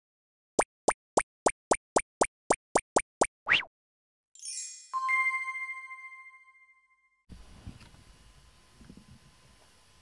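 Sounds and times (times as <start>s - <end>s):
shimmering chime sweep: 4.4s - 7.3s.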